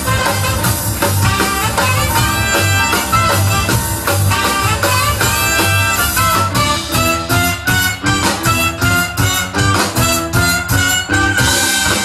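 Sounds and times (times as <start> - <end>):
soul band playing: 0.0 - 12.0.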